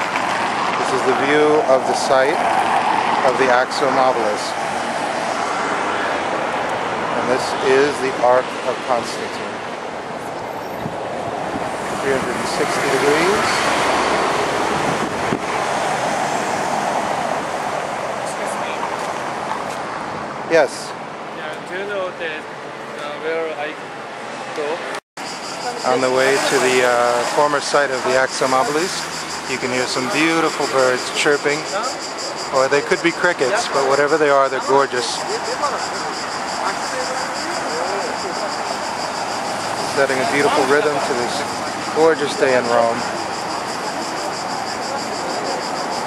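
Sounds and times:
insects chirping: 0:00.0 - 0:19.6, 0:25.2 - 0:46.0
car passing on cobbles: 0:00.0 - 0:20.4, 0:25.2 - 0:46.0
street traffic: 0:00.0 - 0:46.0.

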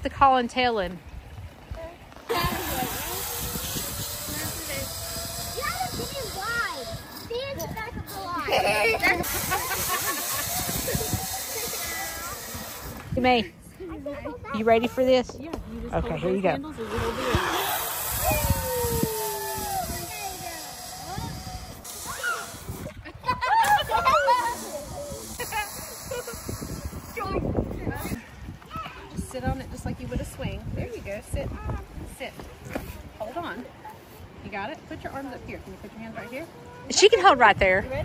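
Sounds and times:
wind rumble on microphone: 0:00.8 - 0:38.0
faint voices: 0:01.6 - 0:38.0
zip line trolley whirring: 0:02.3 - 0:13.2, 0:16.2 - 0:28.2
people laughing: 0:08.4 - 0:12.3, 0:22.8 - 0:26.7.

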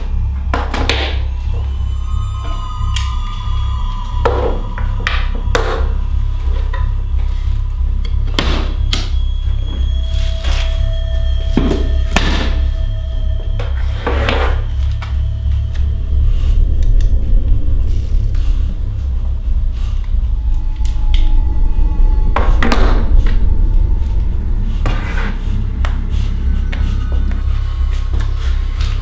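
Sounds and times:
heavy hits: 0:00.0 - 0:29.0
long held high tones: 0:00.0 - 0:29.0
low drone: 0:00.0 - 0:29.0.

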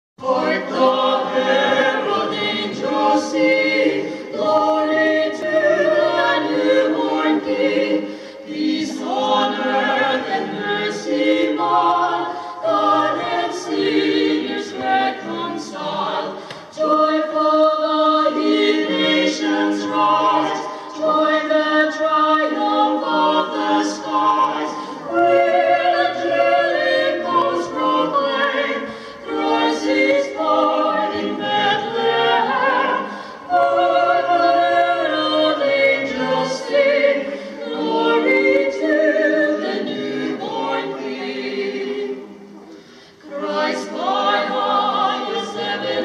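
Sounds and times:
vocal ensemble singing in harmony: 0:00.2 - 0:46.0.

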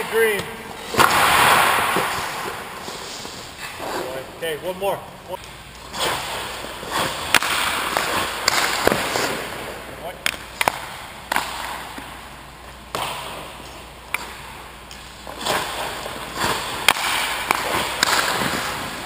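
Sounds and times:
skate blades scraping ice: 0:00.8 - 0:04.3, 0:05.8 - 0:09.8, 0:12.9 - 0:19.0
sticks and pucks cracking: 0:06.9 - 0:09.4, 0:10.2 - 0:12.1, 0:12.9 - 0:19.0
leg pads sliding on ice: 0:15.2 - 0:19.0.

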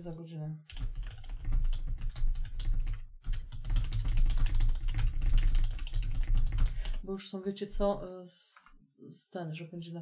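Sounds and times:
fast typing on keyboard: 0:00.7 - 0:07.0.

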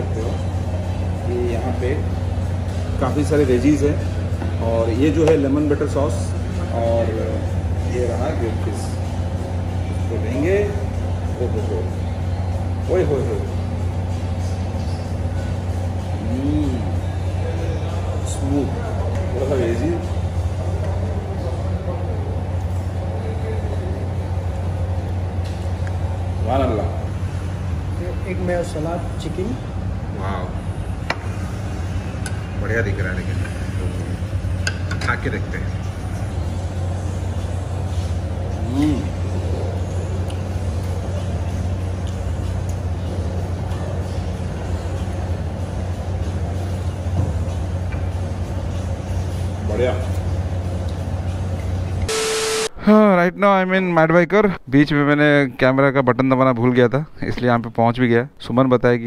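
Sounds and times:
steady low hum: 0:00.0 - 0:54.7.

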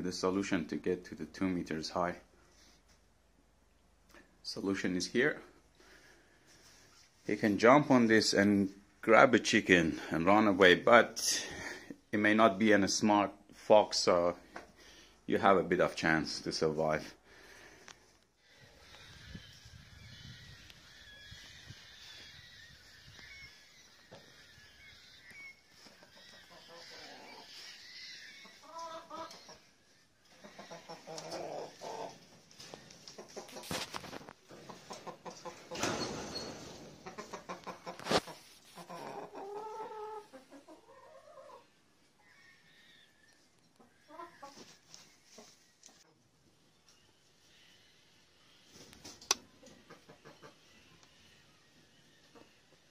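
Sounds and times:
hens clucking: 0:18.7 - 0:41.8, 0:43.7 - 0:46.2, 0:48.6 - 0:52.9.

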